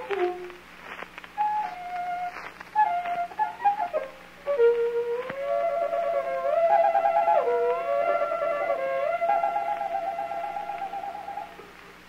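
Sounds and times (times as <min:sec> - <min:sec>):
solo violin playing: 0:00.0 - 0:00.6, 0:01.4 - 0:11.8.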